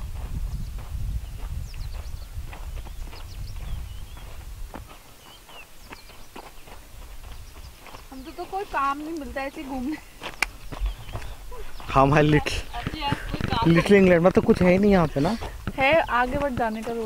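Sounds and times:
footsteps crunching on stony track: 0.0 - 17.0
wind noise on microphone: 0.0 - 17.0.

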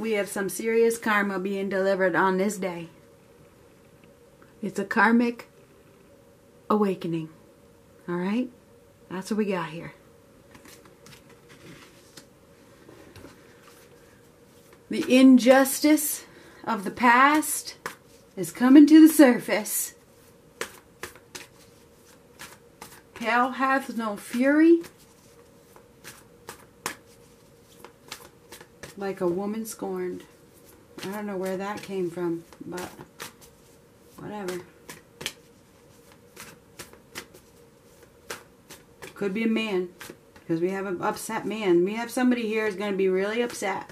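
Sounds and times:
cards being shuffled: 10.5 - 12.3, 17.3 - 18.4, 20.1 - 39.2, 39.9 - 40.5.

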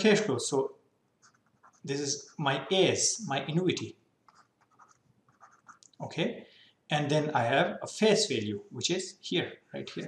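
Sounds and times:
stylus scratching on a screen: 1.2 - 2.4, 4.3 - 6.0.

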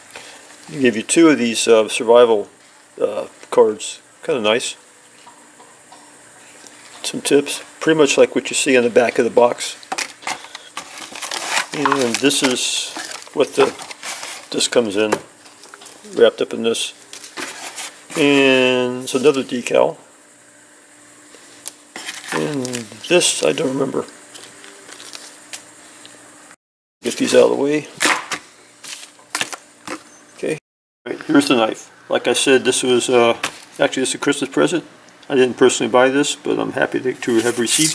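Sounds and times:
faint constant hum: 0.0 - 37.9
cardboard box and plastic bag handled: 10.8 - 14.6.

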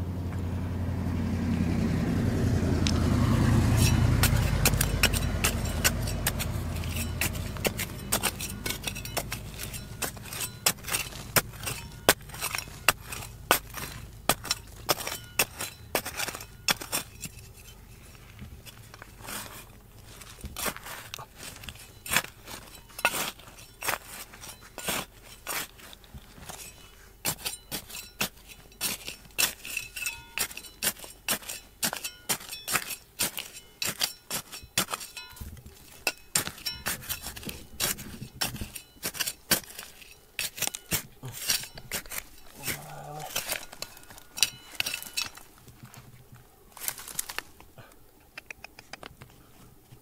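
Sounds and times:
hoe scraping stony soil: 1.7 - 48.0.

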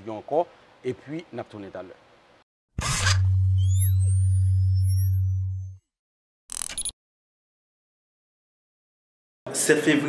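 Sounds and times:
loud low synthesized hum: 3.2 - 5.7
rising and falling pitch sweeps: 3.3 - 5.9.

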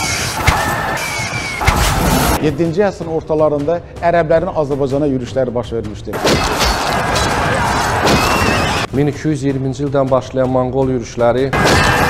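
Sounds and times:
charging cavalry battle noise: 6.2 - 8.9.

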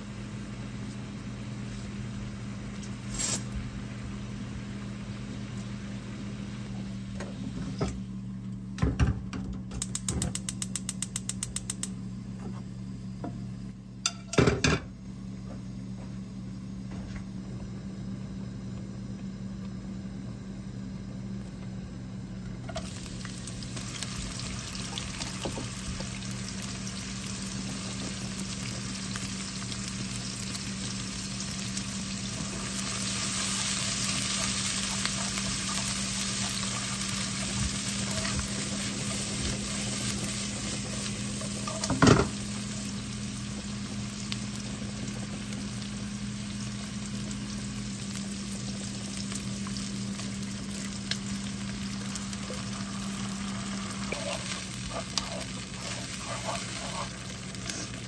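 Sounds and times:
food sizzling in a wok: 0.0 - 6.9, 22.7 - 58.0.

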